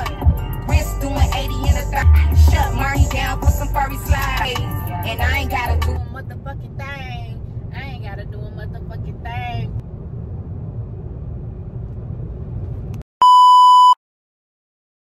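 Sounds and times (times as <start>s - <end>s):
road rumble inside car: 0.0s - 13.1s
voice: 6.0s - 9.8s
loud electronic beep: 13.2s - 14.0s.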